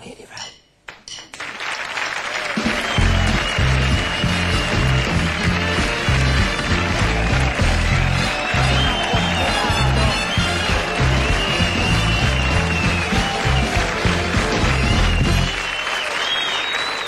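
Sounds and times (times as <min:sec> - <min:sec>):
audience applause: 0:01.4 - 0:17.0
band playing upbeat tune: 0:02.5 - 0:15.9.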